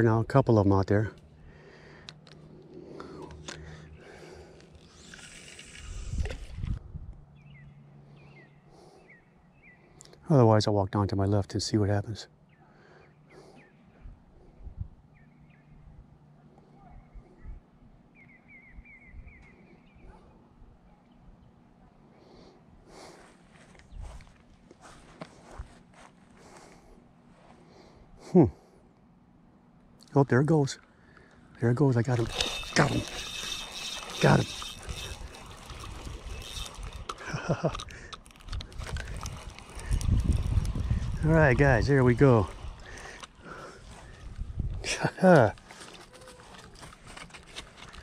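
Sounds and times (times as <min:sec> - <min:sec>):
wind rumble on microphone: 0:05.8 - 0:07.3, 0:14.0 - 0:15.0, 0:37.8 - 0:43.0, 0:43.9 - 0:45.0
man laughing: 0:28.2 - 0:28.6, 0:37.2 - 0:38.2, 0:44.8 - 0:45.6
small clicks: 0:32.2 - 0:41.0.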